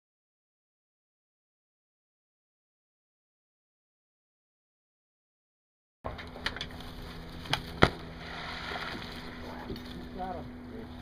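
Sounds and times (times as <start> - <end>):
goose splashing into water: 7.6 - 9.9.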